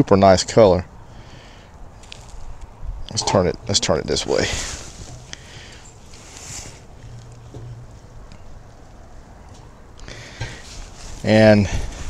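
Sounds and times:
low outdoor background: 0.0s - 12.0s.

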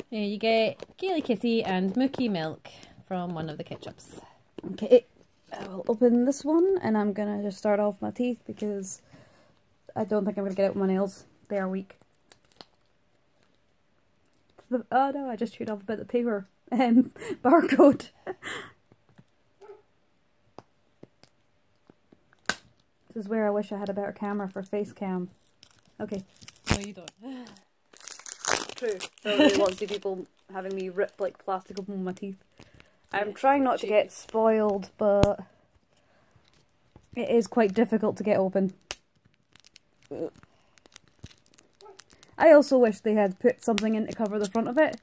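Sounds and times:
plastic wrapper clicking: 12.0s - 13.6s, 25.4s - 33.2s, 38.6s - 42.4s, 43.4s - 45.0s
sharp plastic snap: 22.4s - 22.8s.

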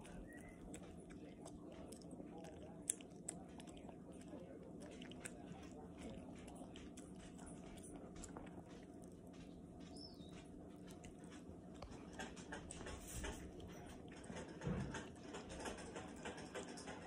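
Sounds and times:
dog licking and chewing wet food: 0.0s - 17.0s.

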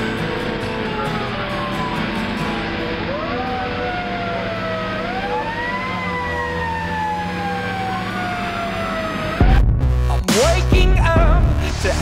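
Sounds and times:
fire engine siren wailing: 0.0s - 9.7s
low engine drone: 0.0s - 12.0s.

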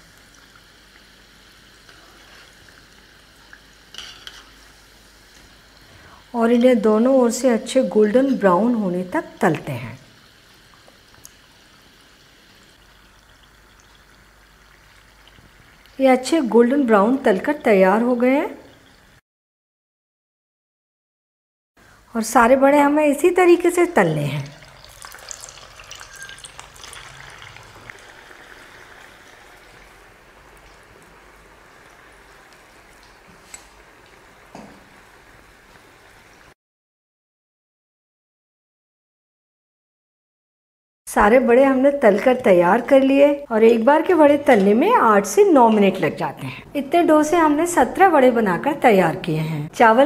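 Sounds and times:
oil sizzling and bubbling: 0.0s - 19.2s, 21.8s - 36.6s, 41.1s - 50.0s.

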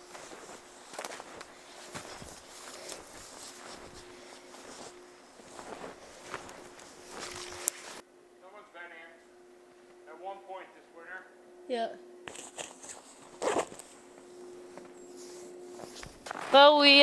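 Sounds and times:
footsteps crunching through snow: 0.0s - 8.0s, 12.3s - 17.0s.

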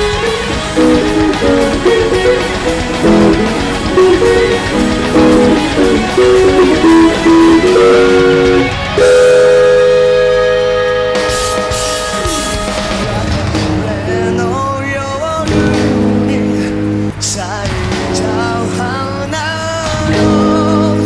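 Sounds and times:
electric guitar lead line: 0.0s - 21.0s.

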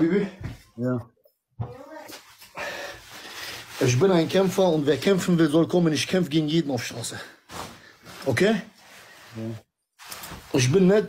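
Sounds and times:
heavy breathing into microphone: 2.5s - 3.8s.

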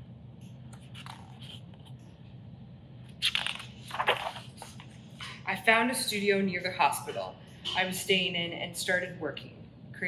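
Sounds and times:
book pages turning: 0.4s - 2.0s, 3.1s - 5.0s.

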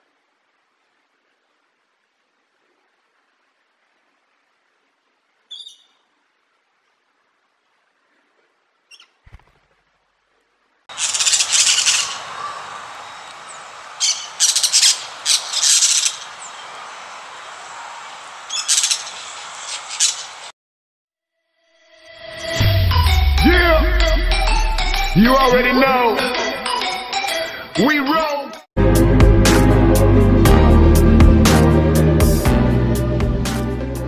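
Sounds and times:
outdoor hiss: 0.0s - 20.5s
parakeets calling harshly: 10.9s - 16.6s.

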